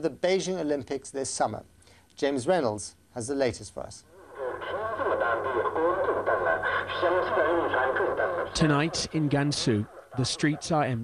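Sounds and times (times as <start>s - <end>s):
announcement over loudspeaker: 4.6s - 11.0s.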